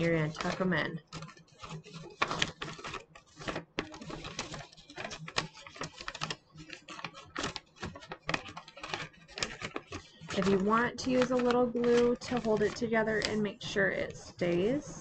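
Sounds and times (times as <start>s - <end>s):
paper crinkling and creasing: 0.0s - 14.8s.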